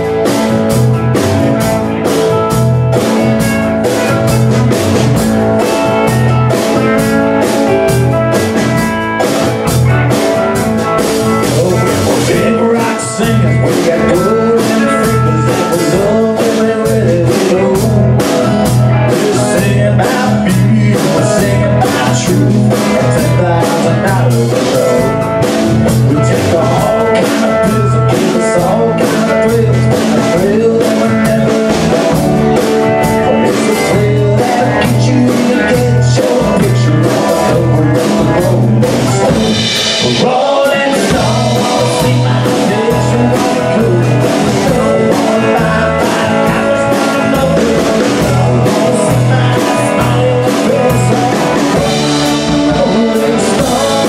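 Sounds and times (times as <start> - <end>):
rock and roll band playing: 0.0 - 54.0
steady drum beat: 0.0 - 54.0.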